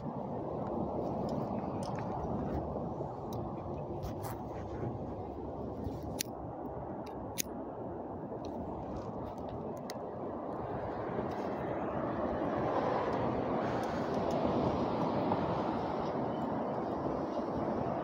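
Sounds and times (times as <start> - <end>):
traffic rumbling: 0.0 - 18.0
wind on microphone: 0.0 - 18.0.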